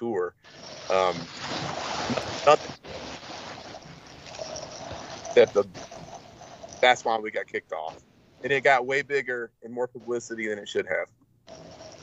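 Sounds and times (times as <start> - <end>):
microphone background hiss: 0.0 - 11.1.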